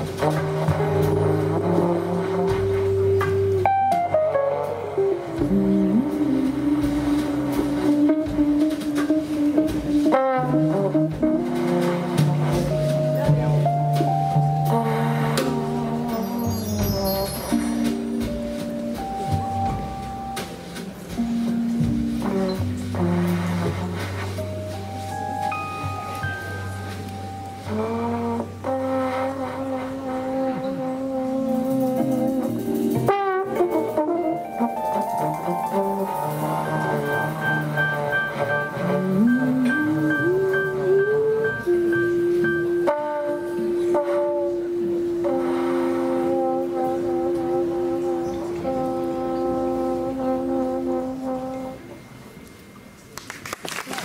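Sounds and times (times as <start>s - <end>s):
trombone holding long notes: 0.0s - 52.3s
double bass: 0.0s - 53.2s
jazz band playing: 0.0s - 54.0s.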